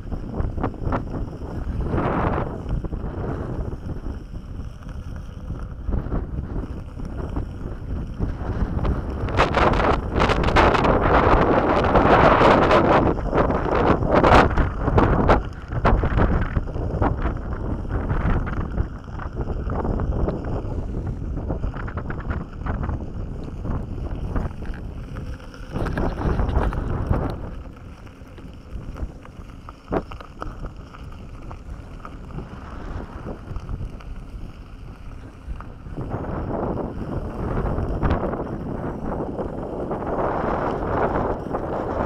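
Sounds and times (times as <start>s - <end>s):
tyre rolling on gravel: 0.0s - 42.0s
wind buffeting microphone: 0.0s - 42.0s.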